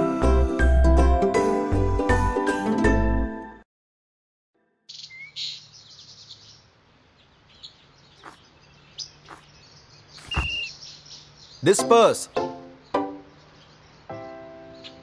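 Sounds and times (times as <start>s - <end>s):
birds chirping and calling: 4.9s - 15.0s.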